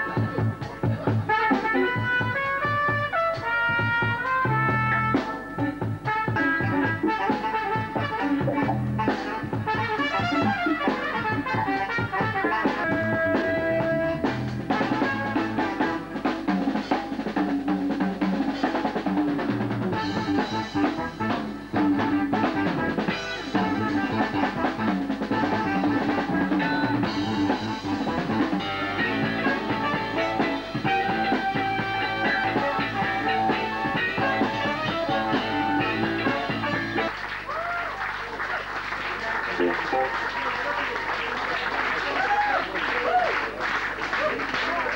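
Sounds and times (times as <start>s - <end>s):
electric bass guitar: 0.0s - 37.2s, 39.6s - 40.2s
jazz band playing: 0.0s - 37.7s, 38.7s - 42.5s.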